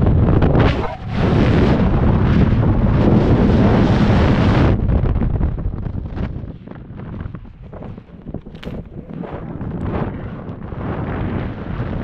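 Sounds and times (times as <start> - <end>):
loud rushing wind: 0.0 - 12.0
uneven wind buffeting: 0.0 - 12.0.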